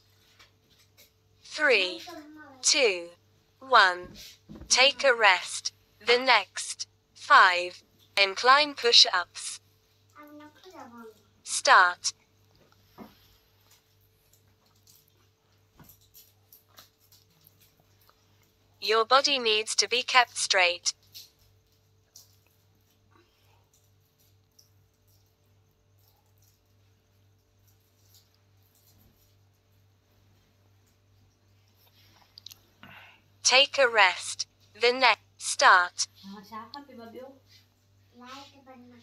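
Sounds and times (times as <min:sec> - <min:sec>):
faint steady hum: 0:00.0 - 0:39.0.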